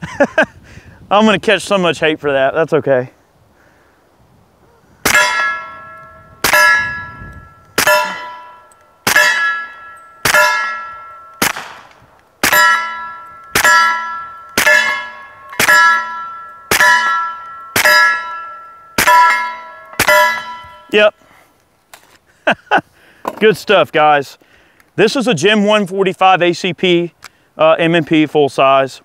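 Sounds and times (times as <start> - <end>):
bullets clanging on steel plates: 5.1 - 21.0
suppressed pistol shots: 11.4 - 12.6.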